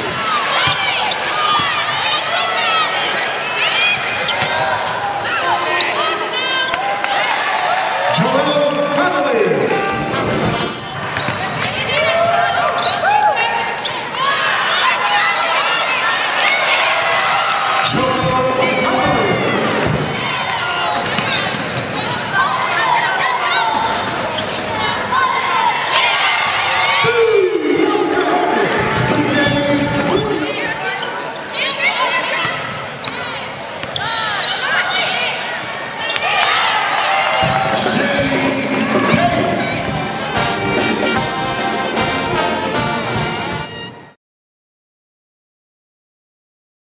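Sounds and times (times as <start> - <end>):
voices in a hall: 0.0 - 43.1
sneakers squeaking: 0.2 - 2.8, 3.4 - 6.9, 9.8 - 14.2, 20.8 - 22.4, 23.6 - 26.0, 28.6 - 35.1
basketball bouncing: 0.6 - 0.8
players calling out: 8.0 - 43.5.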